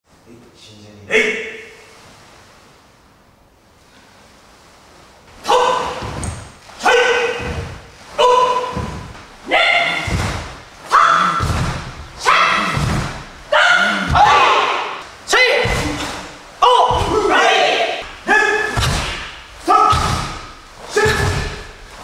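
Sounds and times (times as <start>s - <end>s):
people shouting in unison: 5.4s - 6.2s, 6.8s - 21.7s
thud on wooden floor: 12.8s - 13.4s.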